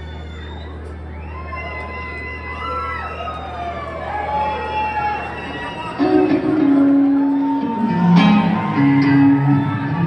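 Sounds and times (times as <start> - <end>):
electric guitar bending notes: 6.0 - 10.0.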